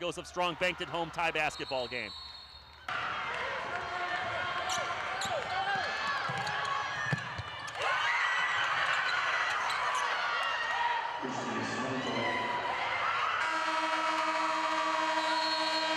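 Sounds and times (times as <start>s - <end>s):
noisy crowd in arena: 0.0s - 15.9s.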